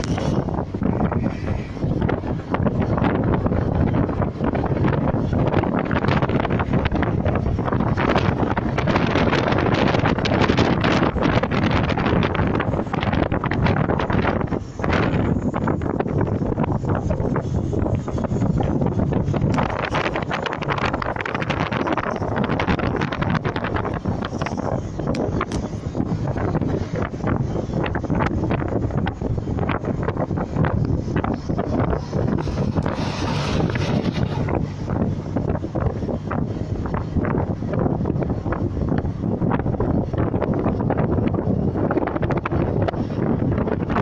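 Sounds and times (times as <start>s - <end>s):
road and engine rumble: 0.0s - 44.0s
wind buffeting microphone: 0.0s - 44.0s.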